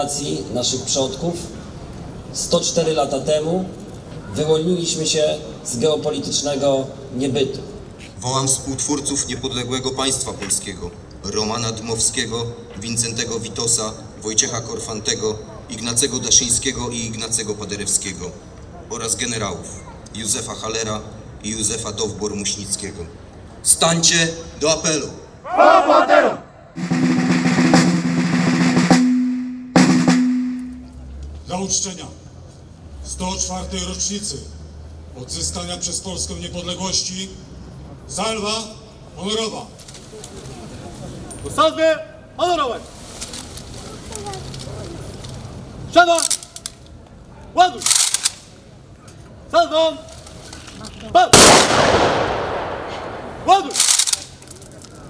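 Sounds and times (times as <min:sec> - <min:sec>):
snare drum roll: 0:26.8 - 0:30.8
hard snare strike ringing: 0:26.8 - 0:30.9
rifle volley crack: 0:51.3 - 0:54.2
gunshot echo: 0:51.4 - 0:53.8.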